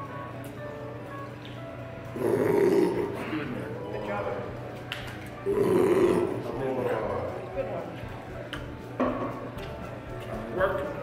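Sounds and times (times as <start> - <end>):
background music: 0.0 - 11.0
rough vocal outbursts: 2.1 - 3.7, 5.4 - 6.5
indistinct voices: 2.1 - 4.6, 5.3 - 7.8.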